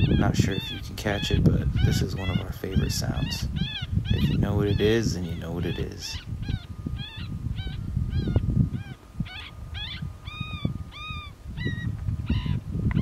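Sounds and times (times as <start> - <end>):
coyotes yipping: 0.0 - 13.0
wind rumble on microphone: 0.0 - 13.0.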